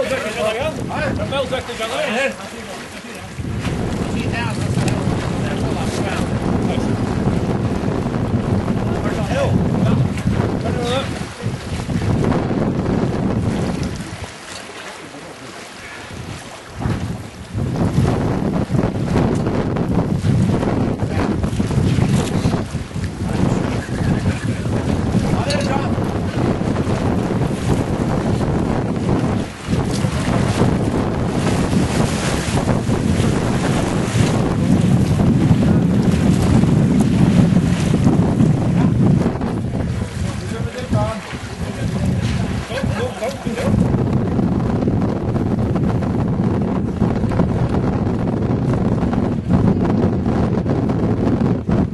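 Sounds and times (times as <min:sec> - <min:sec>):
open water: 0:00.0 - 0:51.9
wind buffeting microphone: 0:00.0 - 0:51.9.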